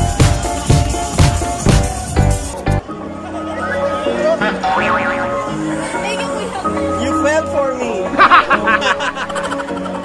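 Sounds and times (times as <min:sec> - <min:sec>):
loud music: 0:00.0 - 0:02.8, 0:04.4 - 0:06.8.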